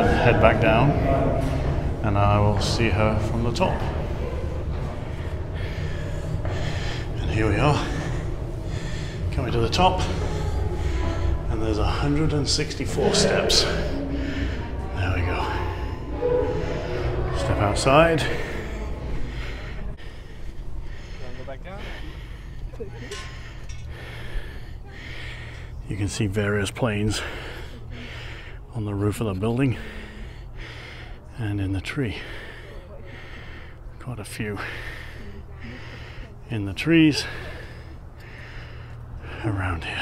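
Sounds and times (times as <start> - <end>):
man breathing: 0.0 - 40.0
steady low rumble: 0.0 - 40.0.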